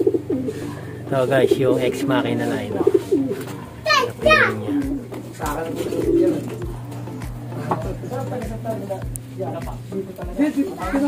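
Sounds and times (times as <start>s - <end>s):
pigeon cooing: 0.0s - 8.7s.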